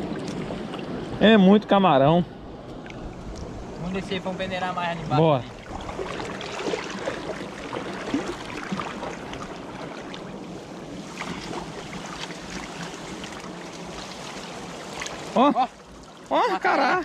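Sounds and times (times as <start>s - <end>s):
wading through water: 5.0s - 17.0s.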